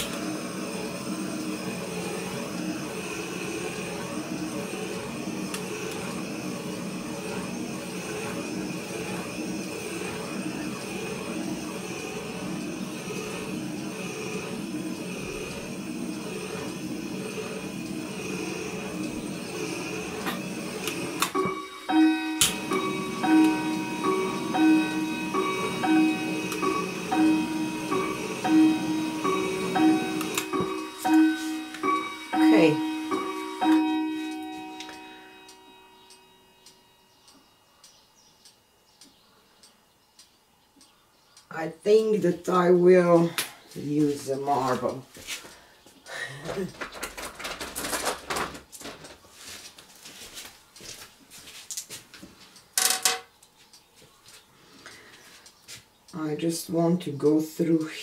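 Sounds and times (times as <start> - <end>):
butane torch flame hissing: 0.0 - 36.1.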